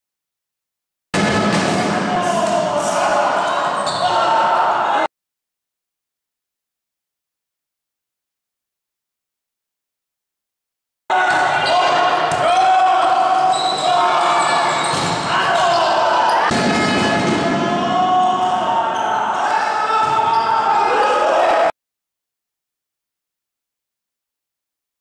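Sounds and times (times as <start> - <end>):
people shouting and calling: 1.2 - 5.1, 11.1 - 21.7
volleyball being struck and bounced: 14.8 - 15.3.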